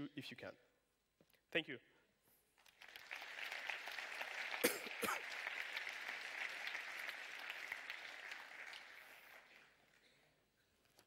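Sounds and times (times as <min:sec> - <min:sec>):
audience applauding: 0:02.6 - 0:10.1.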